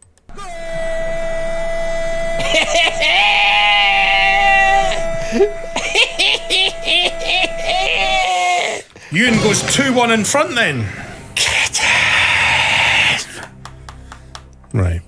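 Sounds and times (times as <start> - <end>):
wavering singing voice: 2.4 - 8.2.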